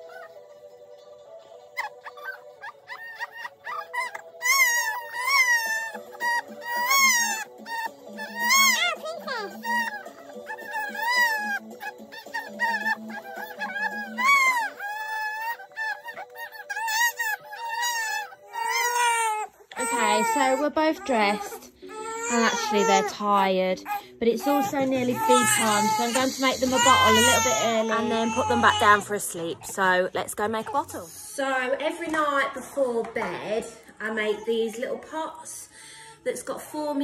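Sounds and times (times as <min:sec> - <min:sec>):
baby crying: 0:01.8 - 0:29.7.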